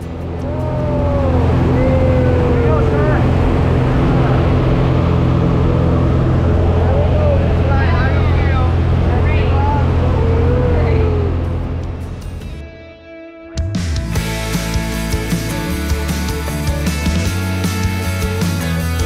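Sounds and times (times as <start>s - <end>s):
propeller aircraft engine drone: 0.0s - 12.8s, 13.8s - 19.0s
voices calling out: 0.3s - 11.8s.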